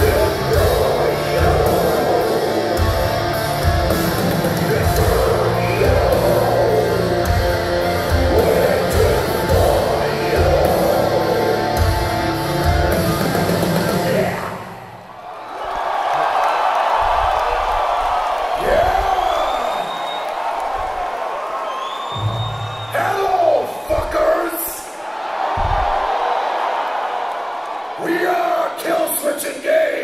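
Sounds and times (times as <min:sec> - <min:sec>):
metal band playing live: 0:00.0 - 0:14.9
crowd cheering and shouting: 0:00.0 - 0:30.0
whistles from crowd: 0:17.8 - 0:20.8, 0:21.5 - 0:23.1.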